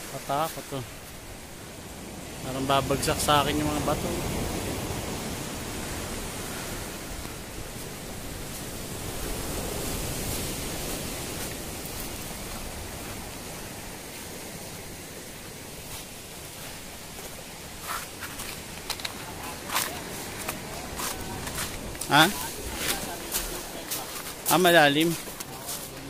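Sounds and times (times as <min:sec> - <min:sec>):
surf breaking on pebble beach: 0:02.0 - 0:26.0.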